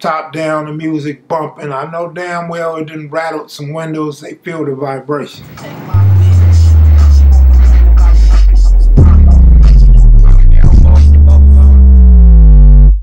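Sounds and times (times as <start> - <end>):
hip hop music with booming bass: 5.4 - 13.0.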